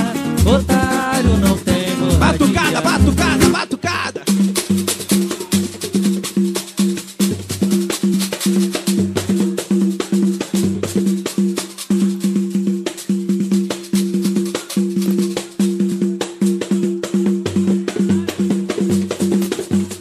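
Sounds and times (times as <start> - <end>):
hand percussion rhythm: 0.0 - 20.0.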